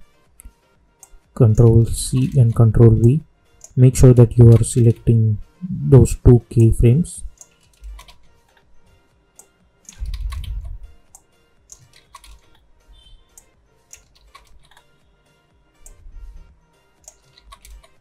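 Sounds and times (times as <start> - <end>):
keyboard and mouse clicking: 0.4 - 5.1, 7.3 - 8.6, 9.4 - 12.6, 13.3 - 14.9, 15.8 - 16.0, 17.0 - 18.0.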